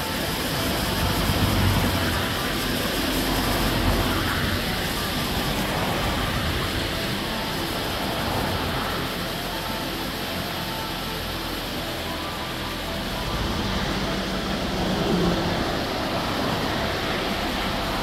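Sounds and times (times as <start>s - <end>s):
water rushing over rocks: 0.0s - 18.0s.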